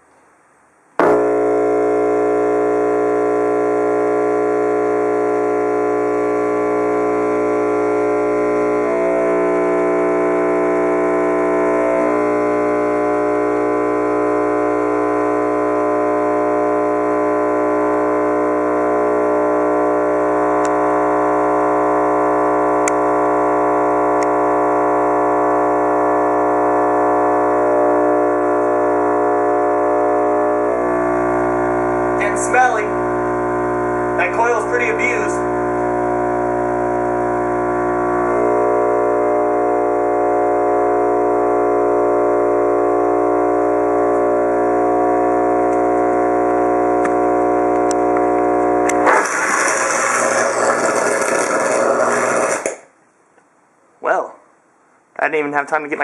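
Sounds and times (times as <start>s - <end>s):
subwoofer buzzing loudly: 0.0s - 56.0s.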